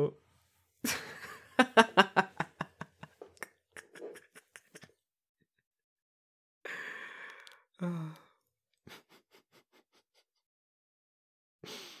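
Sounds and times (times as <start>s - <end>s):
breathy chuckle: 3.5s - 4.9s
man sighing: 6.8s - 8.3s.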